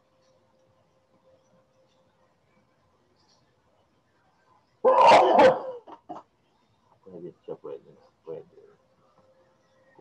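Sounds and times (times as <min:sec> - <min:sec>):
dog barking: 0:04.8 - 0:05.8.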